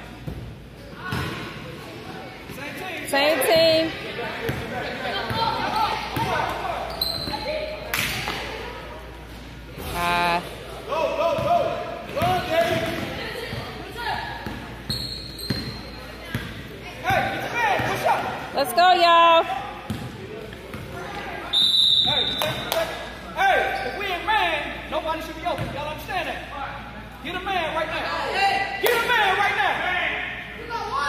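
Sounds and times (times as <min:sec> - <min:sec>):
basketball bouncing on court: 0:04.5 - 0:04.7, 0:12.2 - 0:13.6, 0:19.9 - 0:20.9
referee whistle: 0:21.5 - 0:22.7.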